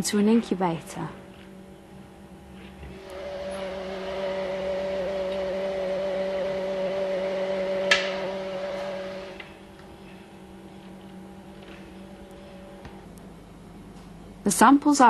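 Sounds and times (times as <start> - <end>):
machine hum with held tones: 0.0 - 14.5.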